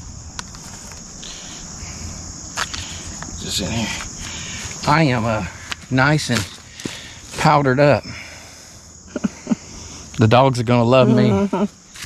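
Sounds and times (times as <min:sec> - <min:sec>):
crickets and insects trilling: 0:00.0 - 0:12.0.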